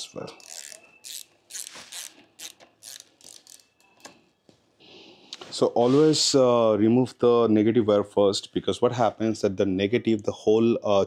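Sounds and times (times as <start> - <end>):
hand ratchet clicking: 0.4 - 3.7.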